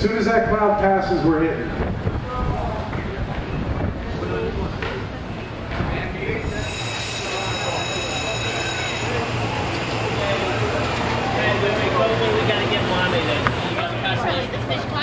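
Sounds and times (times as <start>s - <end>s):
indistinct voices: 1.7s - 15.0s
high squealing tones: 6.5s - 10.8s.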